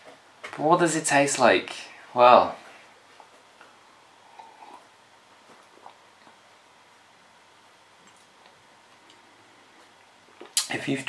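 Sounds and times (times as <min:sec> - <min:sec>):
sipping and swallowing beer: 0:04.2 - 0:04.9
lip and mouth clicks: 0:10.4 - 0:10.7.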